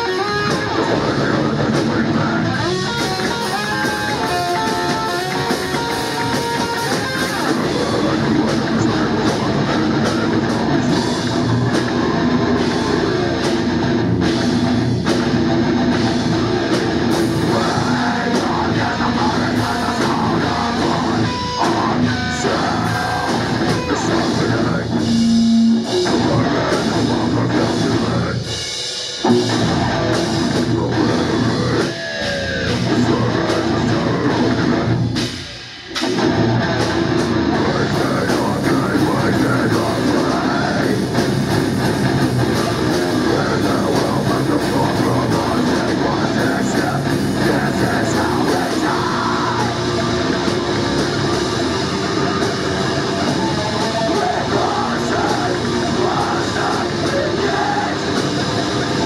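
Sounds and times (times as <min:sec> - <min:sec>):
distorted electric guitars: 0:00.0 - 0:59.0
drum kit: 0:00.0 - 0:59.0.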